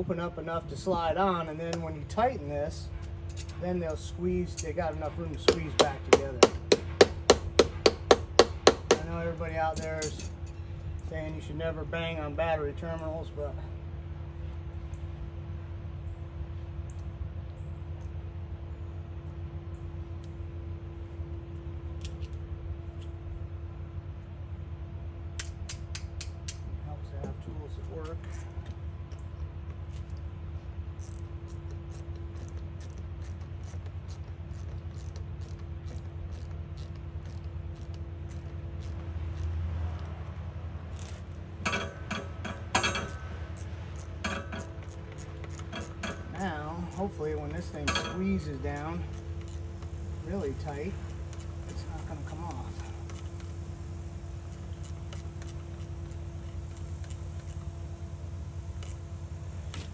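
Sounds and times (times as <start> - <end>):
steady low hum: 0.0 - 59.9
metal tools clinking on clamp: 3.0 - 6.2, 8.9 - 10.7, 41.0 - 49.6.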